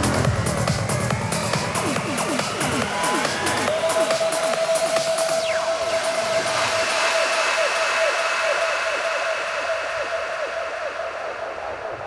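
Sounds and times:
steady wash of noise: 5.4s - 12.0s.

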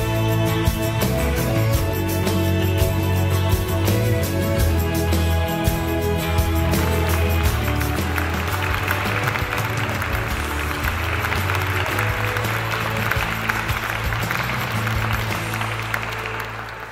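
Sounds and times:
background music with low notes: 0.0s - 16.9s
crowd applauding: 0.0s - 16.9s.

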